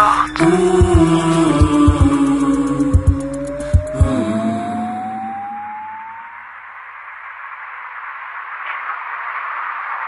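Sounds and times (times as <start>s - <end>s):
electronic drum beat: 0.0s - 5.8s
electronic tone gliding upward: 0.0s - 6.5s.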